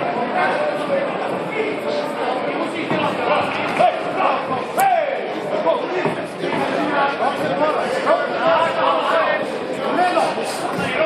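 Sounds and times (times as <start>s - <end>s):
voices calling out in a hall: 0.0s - 11.0s
loud shout: 4.8s - 5.3s.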